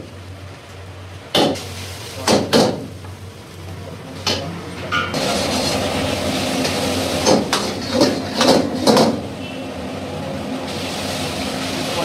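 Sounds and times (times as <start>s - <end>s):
wok burner roar: 0.0s - 12.0s.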